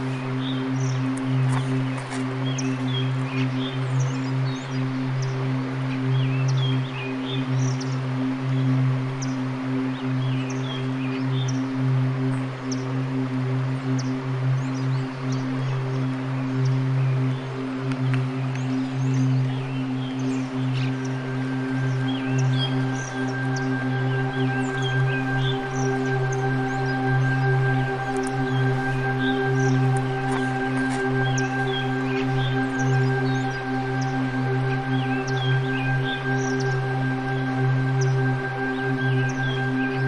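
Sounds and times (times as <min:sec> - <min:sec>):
ambient drone music: 0:00.0 - 0:40.0
bird chirps: 0:14.0 - 0:40.0.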